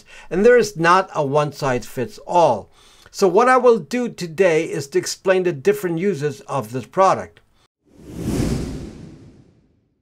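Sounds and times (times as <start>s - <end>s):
transition whoosh: 7.9s - 10.0s.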